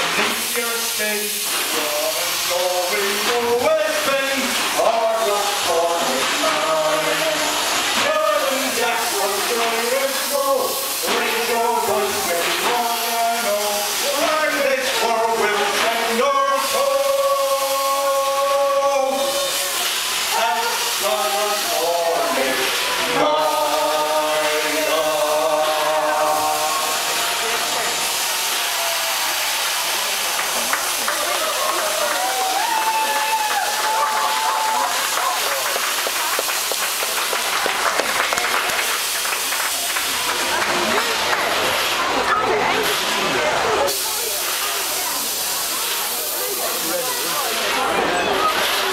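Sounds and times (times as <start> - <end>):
voices singing: 0.0 - 32.6
crowd noise: 0.0 - 48.9
hiss of vapour jetting: 0.0 - 48.9.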